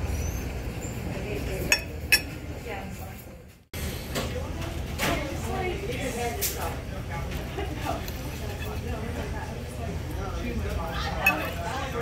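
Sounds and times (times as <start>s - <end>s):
restaurant room hum: 0.0s - 12.0s
tableware clinking: 0.9s - 2.5s, 7.9s - 8.9s, 11.0s - 12.0s.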